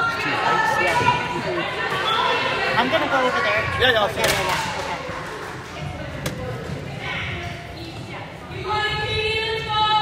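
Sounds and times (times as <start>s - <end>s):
murmur of spectators' voices: 0.0s - 10.0s.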